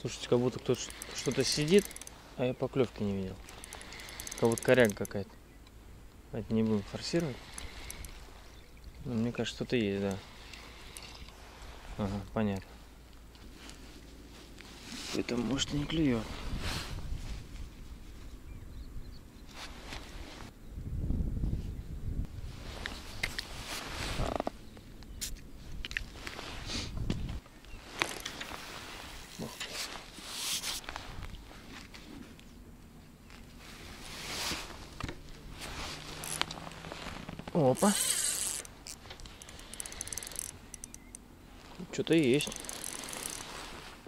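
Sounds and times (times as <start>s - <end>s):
gusty breeze: 0.0s - 44.0s
rustling and knocks of fishing tackle: 0.4s - 5.3s, 27.1s - 32.6s, 33.2s - 41.2s, 41.8s - 44.0s.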